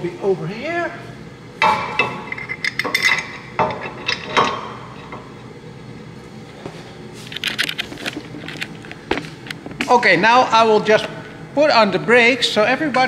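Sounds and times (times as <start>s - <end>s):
metal clinks and knocks: 1.6s - 5.3s.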